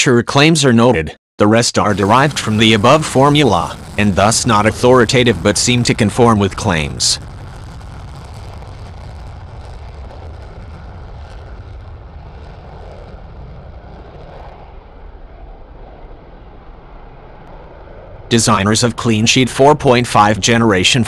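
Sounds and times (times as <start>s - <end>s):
jet engines rushing: 1.8s - 21.0s.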